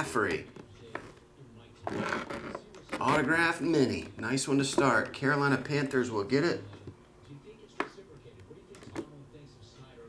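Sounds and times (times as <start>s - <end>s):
plastic handling and rubbing: 0.3s - 5.2s.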